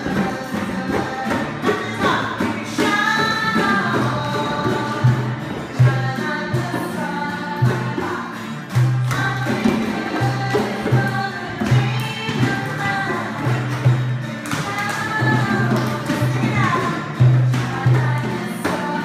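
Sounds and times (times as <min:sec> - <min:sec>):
children and adults singing: 0:00.0 - 0:19.0
hand drums beating: 0:00.0 - 0:19.0.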